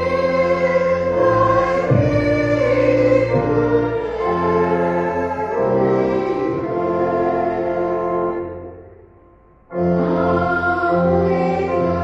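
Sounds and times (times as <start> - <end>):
choir singing a hymn: 0.0 - 8.8, 9.7 - 12.0
held accompaniment chords: 0.0 - 12.0.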